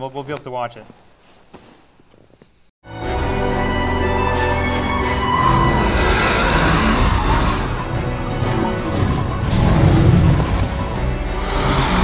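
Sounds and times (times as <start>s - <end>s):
dramatic music: 2.9s - 12.0s
heavy low rumbling: 5.1s - 12.0s.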